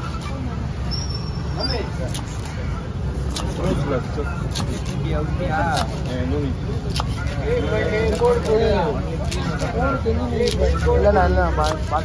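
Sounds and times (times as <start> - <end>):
voices: 0.0 - 12.0
knife chopping fish: 3.2 - 8.6, 10.4 - 12.0.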